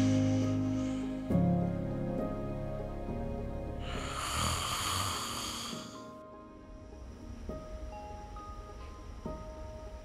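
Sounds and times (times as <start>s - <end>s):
soft background music: 0.0s - 10.0s
person snoring: 3.8s - 6.2s.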